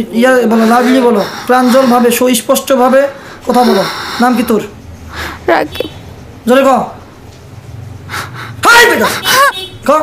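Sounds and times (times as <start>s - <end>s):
person speaking loudly: 0.1s - 4.6s.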